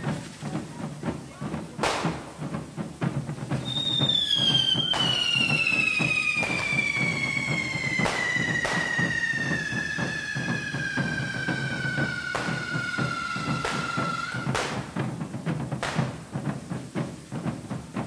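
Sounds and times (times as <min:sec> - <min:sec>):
fireworks crackling and hissing: 0:00.0 - 0:18.0
sharp bangs: 0:01.8 - 0:02.8, 0:03.6 - 0:16.6
long falling whistle: 0:03.6 - 0:14.9.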